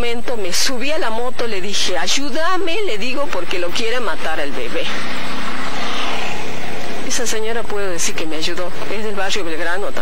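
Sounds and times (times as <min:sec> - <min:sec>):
vehicle engine passing by: 0:04.7 - 0:07.7.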